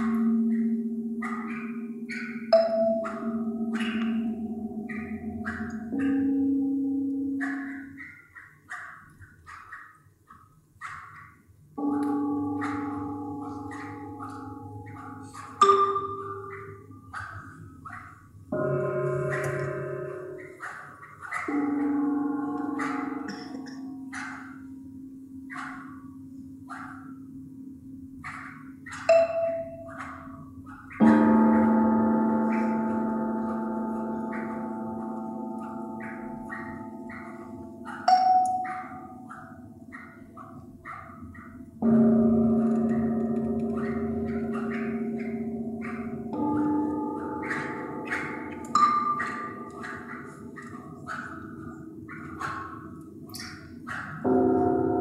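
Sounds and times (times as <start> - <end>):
tuned gongs ringing: 0.0 - 8.2, 11.8 - 40.9, 41.6 - 55.0.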